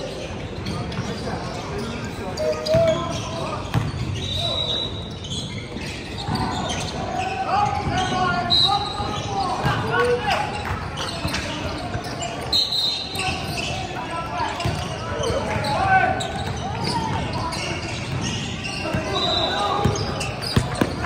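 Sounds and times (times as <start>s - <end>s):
sneaker squeaks: 0.0s - 21.0s
players calling out: 0.1s - 21.0s.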